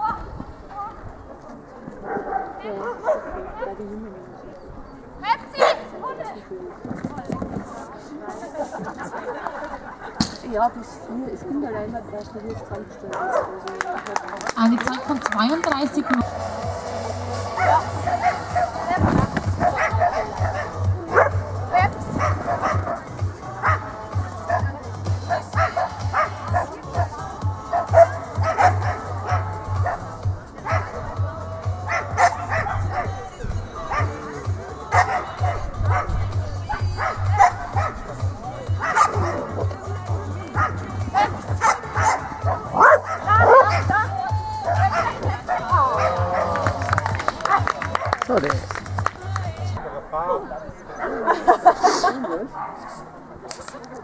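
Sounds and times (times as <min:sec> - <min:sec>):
background music: 0:08.9 - 0:50.2
dog barking and yipping: 0:17.6 - 0:18.9, 0:19.6 - 0:21.4, 0:25.3 - 0:26.7, 0:27.7 - 0:31.0, 0:31.9 - 0:33.2, 0:34.9 - 0:36.1, 0:36.8 - 0:38.0, 0:38.8 - 0:39.6, 0:40.6 - 0:46.5.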